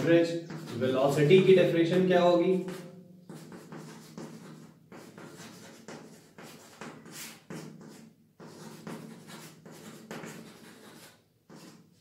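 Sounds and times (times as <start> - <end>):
chalk writing on a blackboard: 0.0 - 1.5, 2.5 - 12.0.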